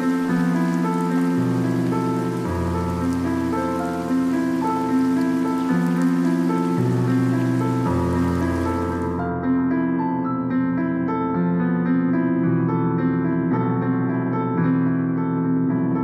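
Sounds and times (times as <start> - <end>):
steady rain: 0.0 - 9.2
slow keyboard music: 0.0 - 16.0.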